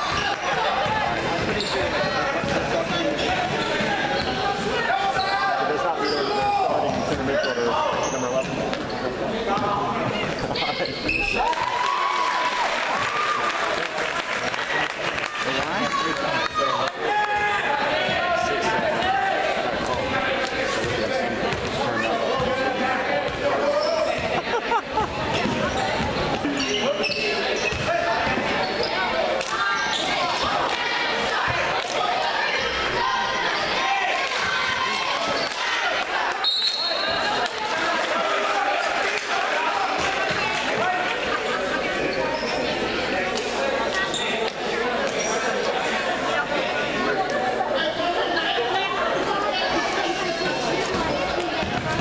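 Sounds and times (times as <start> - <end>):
voices in echoing hall: 0.0 - 52.0.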